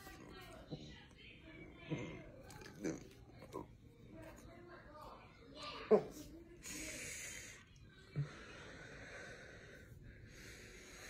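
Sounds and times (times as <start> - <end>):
man breathing: 8.2 - 11.0.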